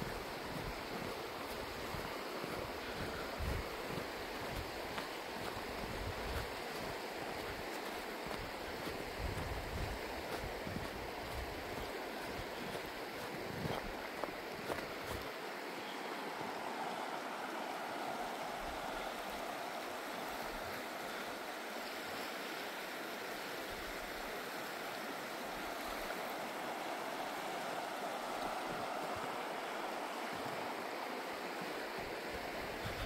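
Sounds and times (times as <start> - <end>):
river rushing over rocks: 0.0 - 33.0.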